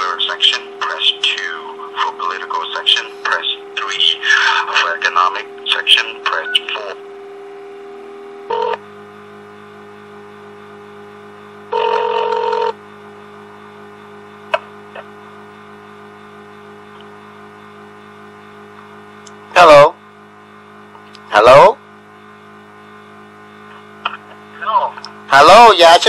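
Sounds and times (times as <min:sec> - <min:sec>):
low line hum: 0:00.0 - 0:26.0
steady telephone tone: 0:08.4 - 0:08.8, 0:11.7 - 0:13.8
telephone ringing: 0:08.5 - 0:08.8, 0:11.7 - 0:12.8.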